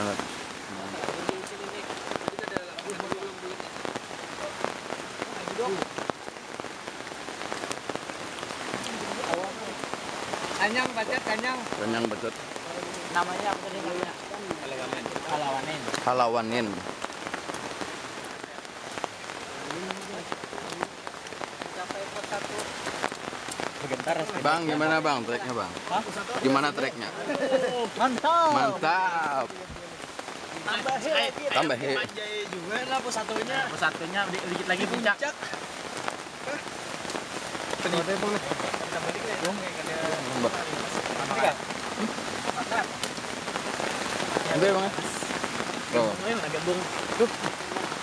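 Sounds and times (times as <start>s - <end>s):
raindrops ticking: 0.0s - 48.0s
steady rain falling: 0.0s - 48.0s.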